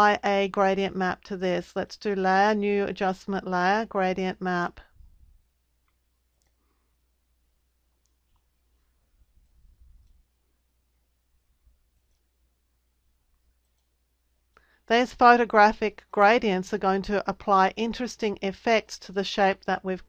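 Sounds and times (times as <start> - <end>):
computer mouse clicks: 5.8 - 6.6, 9.4 - 10.3, 11.9 - 12.3, 13.3 - 14.6.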